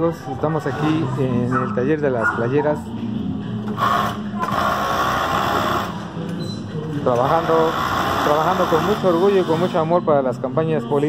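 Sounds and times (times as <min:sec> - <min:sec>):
industrial sewing machines running: 0:03.8 - 0:06.0, 0:07.2 - 0:09.9.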